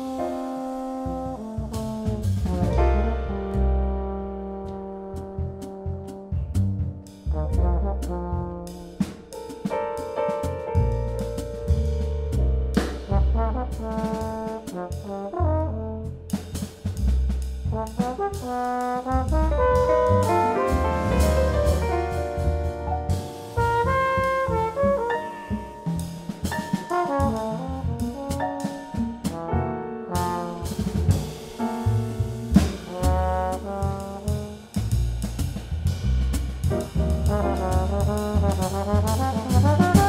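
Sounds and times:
bass: 0:00.0 - 0:40.0
drums: 0:00.0 - 0:40.0
jazz trombone: 0:00.0 - 0:40.0.

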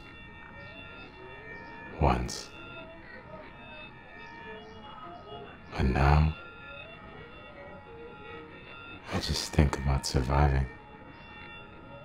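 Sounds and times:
faint ambient drone: 0:00.0 - 0:12.0.

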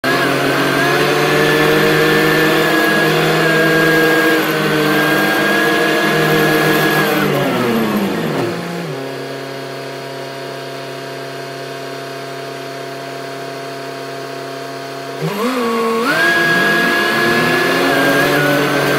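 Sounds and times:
diesel engine revving then idling: 0:00.0 - 0:09.6, 0:15.2 - 0:18.9.

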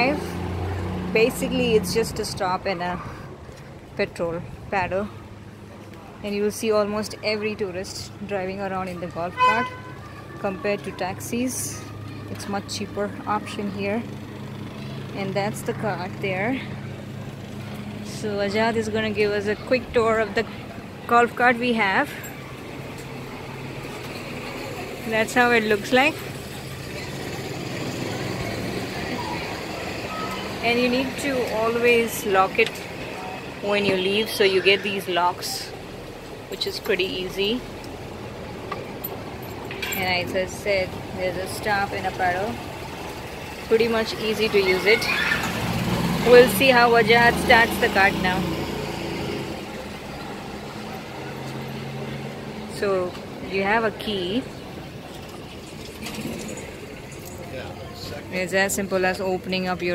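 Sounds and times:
street traffic noise: 0:00.0 - 0:59.9.

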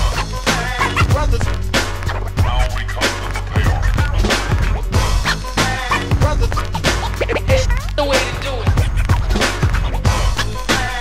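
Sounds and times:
hip hop drum beat: 0:00.0 - 0:11.0
turntable scratching: 0:00.0 - 0:11.0.

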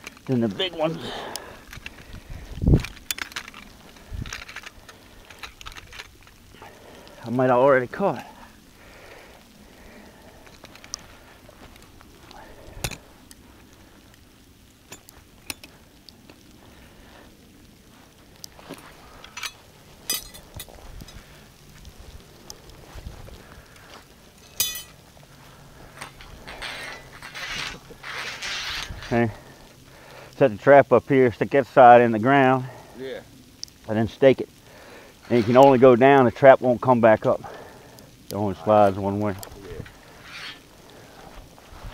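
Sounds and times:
rustling through dry grass: 0:00.0 - 0:30.4, 0:31.7 - 0:41.9
metallic clinks and knocks: 0:19.3 - 0:21.2, 0:24.4 - 0:25.0.

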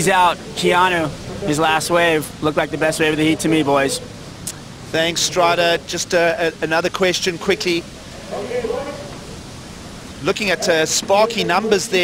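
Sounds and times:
ocean surf breaking: 0:00.0 - 0:12.0
faint voice murmuring: 0:07.4 - 0:09.6.

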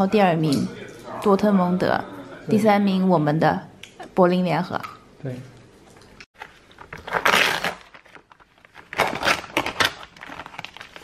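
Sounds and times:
plastic film peeling off tray: 0:06.4 - 0:11.0.

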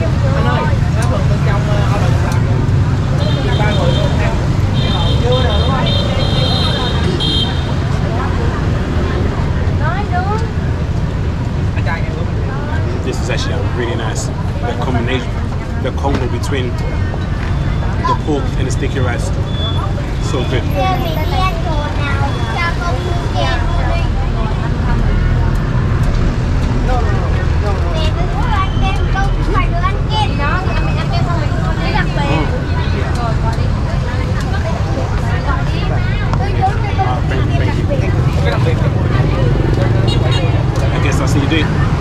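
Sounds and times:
people talking: 0:00.0 - 0:10.8, 0:11.7 - 0:42.0
scooter traffic rumble: 0:00.0 - 0:42.0.

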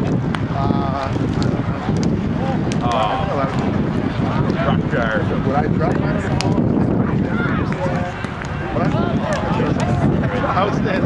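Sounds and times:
people talking and calling out: 0:00.0 - 0:11.0
wind on microphone: 0:00.0 - 0:11.0.

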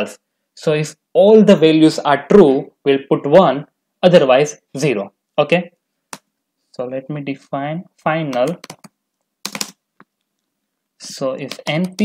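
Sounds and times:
computer keyboard keystrokes: 0:08.3 - 0:09.8.

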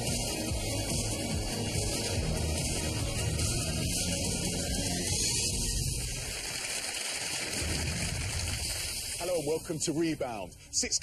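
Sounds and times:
audience applauding: 0:06.1 - 0:09.0.

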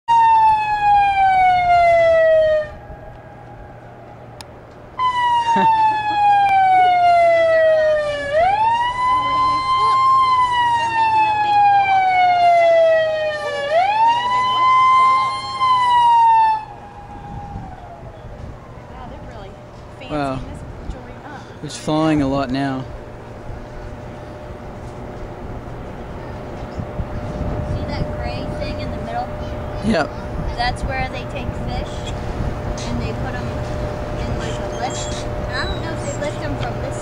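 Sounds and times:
warning siren wailing: 0:00.1 - 0:21.2, 0:22.8 - 0:30.5, 0:32.3 - 0:37.0.

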